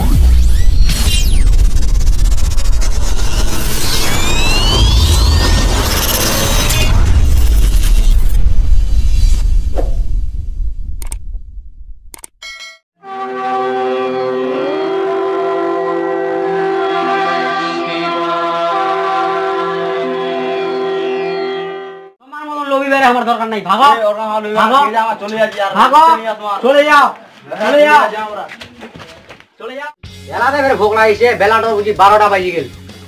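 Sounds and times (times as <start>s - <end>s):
rising sweeps: 0.0s - 10.7s
loud whooshing: 0.0s - 12.0s
booming deep rumble: 0.0s - 12.1s
synthesized musical drone: 1.2s - 7.3s, 13.1s - 22.1s
short clicks: 11.0s - 11.2s.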